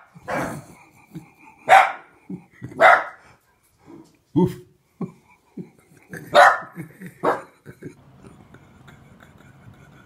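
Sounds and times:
small dog barking: 0:01.7 - 0:02.0, 0:02.8 - 0:03.2, 0:06.3 - 0:07.5.

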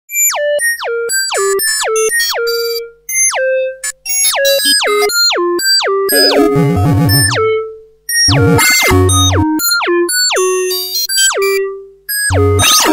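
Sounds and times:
wobbling warbling synth: 0:06.1 - 0:07.6, 0:08.3 - 0:09.4, 0:12.3 - 0:12.9
synthesizer falling pitch glides: 0:06.1 - 0:07.7, 0:08.3 - 0:09.4.

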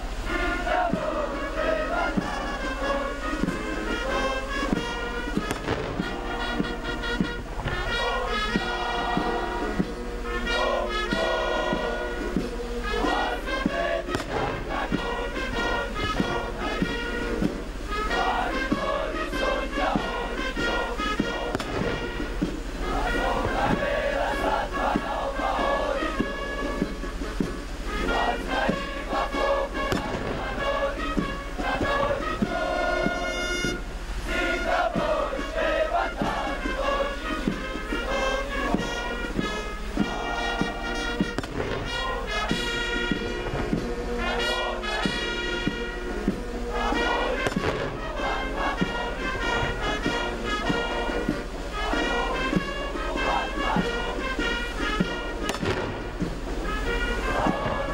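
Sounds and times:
military brass band playing: 0:00.0 - 0:57.9.

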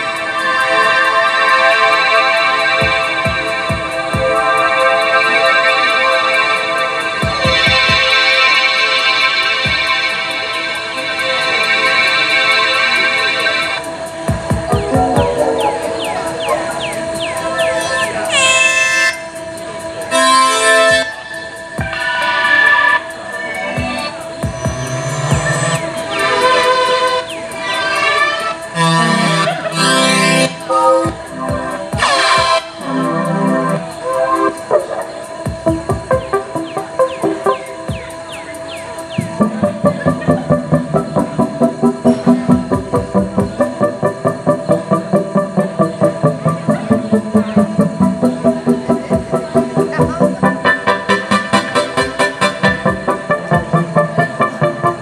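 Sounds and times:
buzzy horn-like synth chords: 0:00.0 - 0:38.1, 0:38.9 - 0:55.0
downward-sweeping synth blips: 0:00.0 - 0:55.0
synth drone: 0:00.0 - 0:55.0
pitch-dropping bass thumps: 0:14.3 - 0:17.7, 0:23.8 - 0:26.2.

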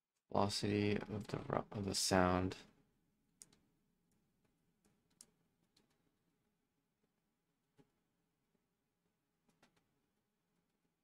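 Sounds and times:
faint clicks and taps: 0:03.4 - 0:06.2, 0:07.0 - 0:10.9.

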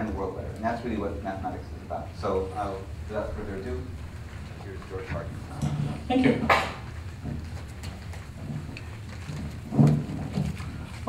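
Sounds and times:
microphone handling rumble: 0:02.7 - 0:11.0.

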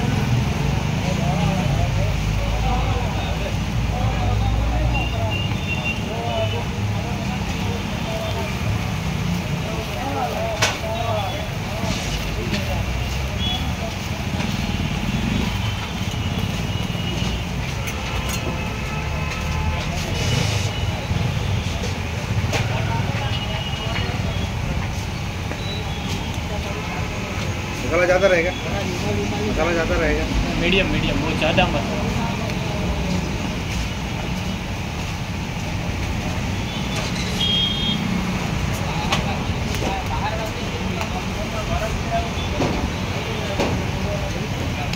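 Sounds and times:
low street rumble: 0:00.0 - 0:44.9
faint background voices: 0:00.8 - 0:36.6.

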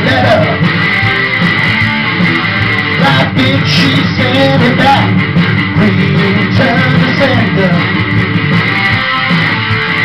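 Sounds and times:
rock guitar strumming: 0:00.0 - 0:10.0.

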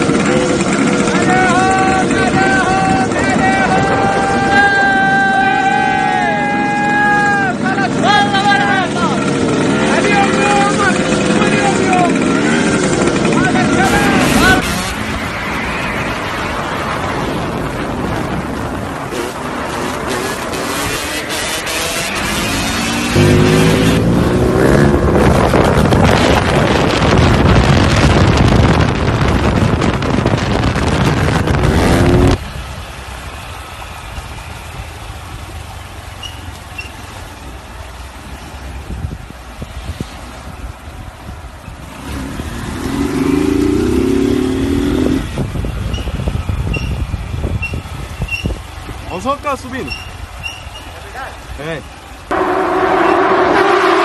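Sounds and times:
motorcycle engine revving: 0:00.0 - 0:03.9, 0:08.8 - 0:15.5, 0:19.0 - 0:32.4, 0:41.8 - 0:48.8, 0:52.3 - 0:54.0
dirt bike engine revving: 0:07.9 - 0:15.2, 0:19.1 - 0:26.8, 0:31.3 - 0:32.4, 0:41.9 - 0:46.1, 0:52.3 - 0:54.0.

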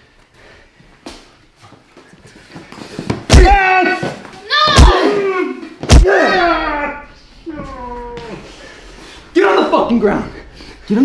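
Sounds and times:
sharp thudding blow: 0:05.8 - 0:11.0.

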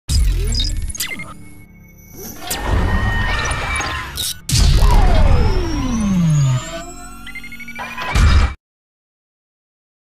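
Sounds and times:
held synth tones: 0:00.3 - 0:07.9
rising synth tone: 0:00.4 - 0:08.0
synth tone sweeping down: 0:04.5 - 0:07.2.

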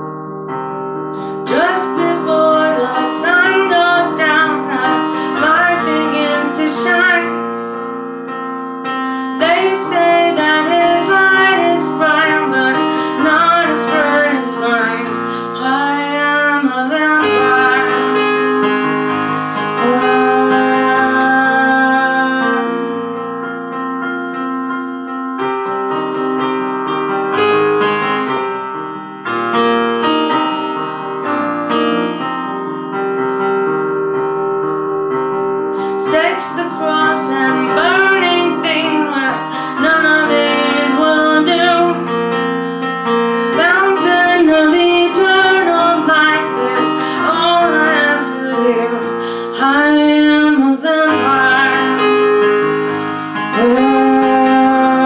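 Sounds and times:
electronic keyboard chords: 0:00.0 - 0:55.0
woman singing: 0:01.3 - 0:07.6, 0:09.1 - 0:18.6, 0:19.6 - 0:23.2, 0:35.8 - 0:42.4, 0:43.4 - 0:52.4, 0:53.4 - 0:55.0.

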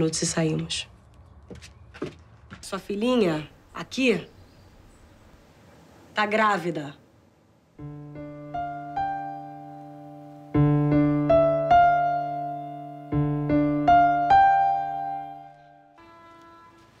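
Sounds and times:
piano chords: 0:07.8 - 0:17.0.

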